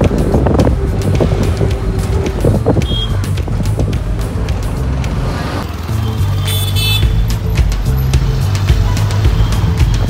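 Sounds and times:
wind on microphone: 0.0s - 4.2s
auto-rickshaw engine rumbling: 0.0s - 10.0s
background music: 0.0s - 10.0s
road noise: 0.0s - 10.0s.

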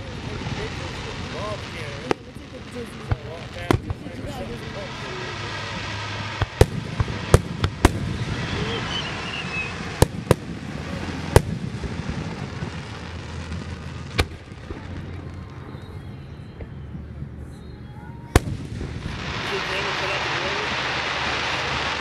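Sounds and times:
continuous background noise: 0.0s - 22.0s
firework shells bursting: 5.5s - 15.3s.

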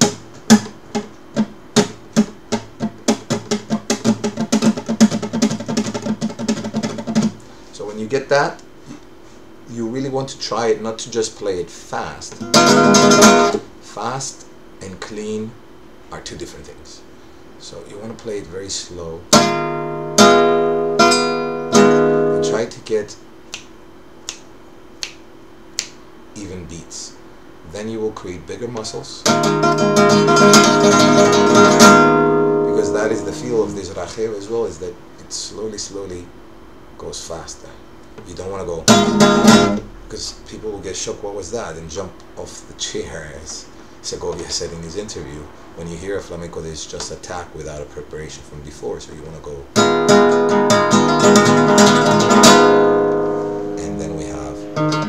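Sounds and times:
fingernails clicking on guitar strings: 0.0s - 7.3s
classical guitar strumming: 0.0s - 7.4s, 12.3s - 13.7s, 19.3s - 22.8s, 29.2s - 33.9s, 38.8s - 39.9s, 49.8s - 55.0s.

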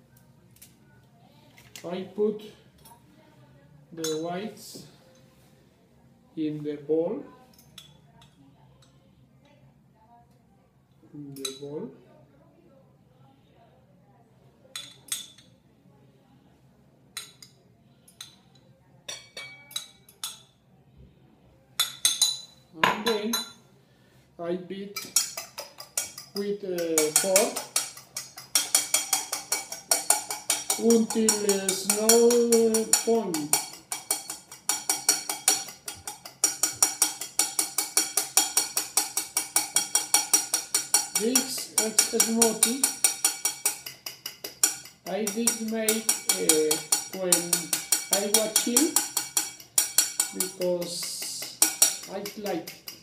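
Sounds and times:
metal spoon clinking on glass: 14.7s - 15.5s, 19.1s - 20.5s, 21.8s - 23.6s, 25.0s - 53.0s
fork beating eggs in bowl: 25.0s - 53.0s.

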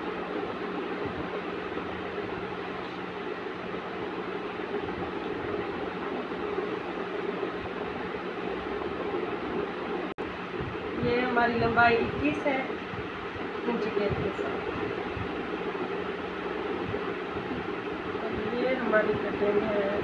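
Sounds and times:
constant low hum: 0.0s - 20.0s
steady rushing noise: 0.0s - 20.0s.

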